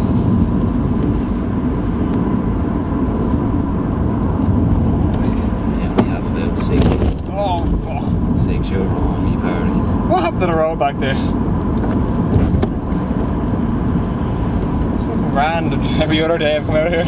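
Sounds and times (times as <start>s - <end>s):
car engine and tyres on wet road: 0.0s - 17.0s.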